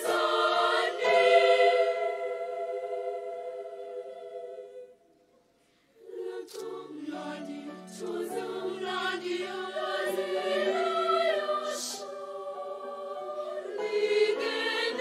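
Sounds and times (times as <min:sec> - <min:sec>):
children's choir singing: 0:00.0 - 0:05.2, 0:06.0 - 0:15.0.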